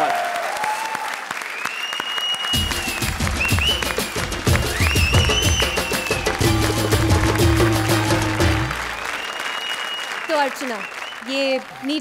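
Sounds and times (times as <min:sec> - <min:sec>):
audience applause: 0:00.0 - 0:12.0
music with steady beat: 0:02.6 - 0:08.8.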